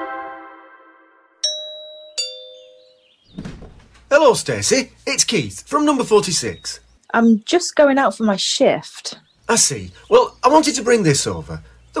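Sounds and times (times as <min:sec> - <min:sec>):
two-tone doorbell chime: 0:01.4 - 0:03.2.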